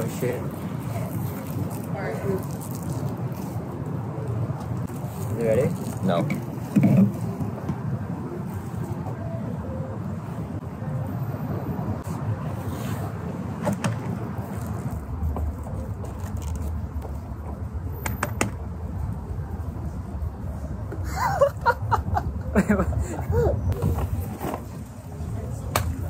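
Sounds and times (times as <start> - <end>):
street traffic: 0.0 - 26.0.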